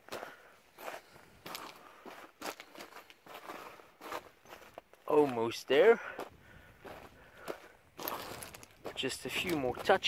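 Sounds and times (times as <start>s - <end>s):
boots crunching on gravel: 0.0s - 10.0s.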